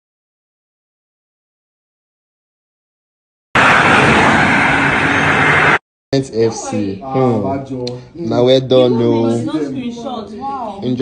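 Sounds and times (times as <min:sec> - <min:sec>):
road traffic noise: 0:03.6 - 0:05.8.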